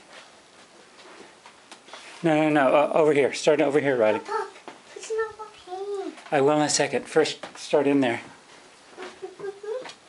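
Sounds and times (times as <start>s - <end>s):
soft rustles: 0.0s - 2.4s.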